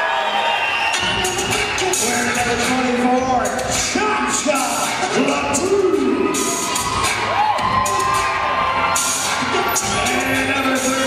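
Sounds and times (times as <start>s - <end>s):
crowd cheering and shouting: 0.0s - 11.0s
loud music: 0.0s - 11.0s.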